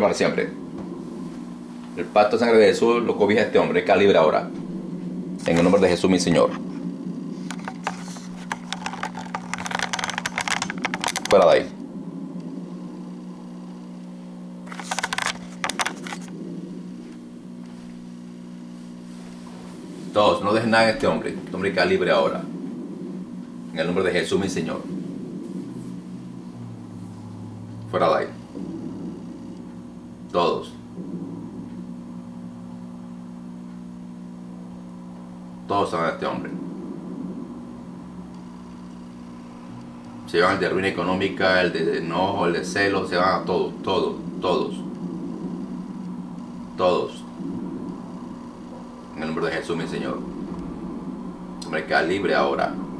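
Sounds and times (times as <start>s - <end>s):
fan hum with faint hiss: 0.0s - 52.9s.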